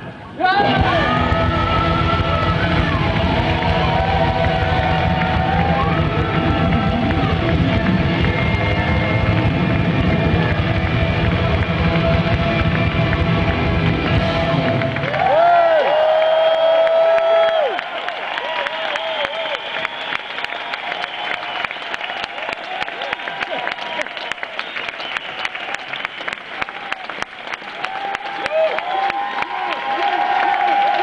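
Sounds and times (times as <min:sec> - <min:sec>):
rock band with orchestra: 0:00.4 - 0:15.0
lead electric guitar bent notes: 0:00.6 - 0:15.0
steady drum beat: 0:00.7 - 0:15.0.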